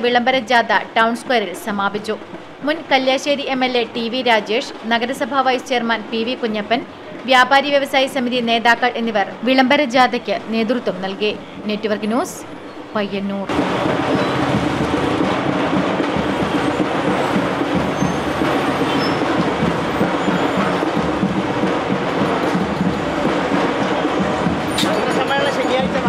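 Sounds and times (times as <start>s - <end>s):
passing traffic: 0.0s - 26.0s
many voices: 16.9s - 26.0s.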